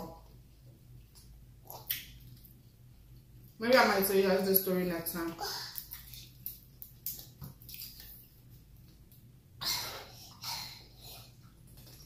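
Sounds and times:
soft eating squishes: 0:00.2 - 0:03.6, 0:05.3 - 0:09.4, 0:10.1 - 0:12.0.

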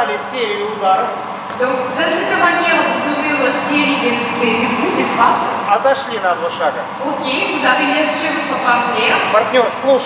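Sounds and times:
person talking: 0:00.7 - 0:10.0.

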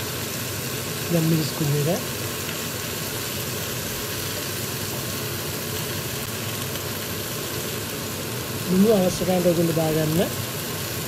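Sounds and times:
food sizzling in a saucepan: 0:00.0 - 0:11.0.

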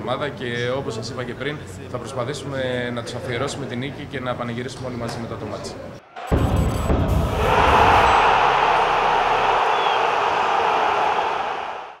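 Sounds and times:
deep hit: 0:06.2 - 0:09.7.

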